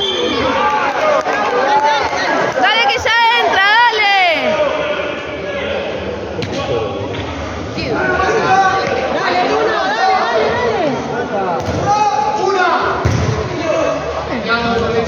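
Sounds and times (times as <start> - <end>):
voices shouting in echoing hall: 0.0 - 15.0.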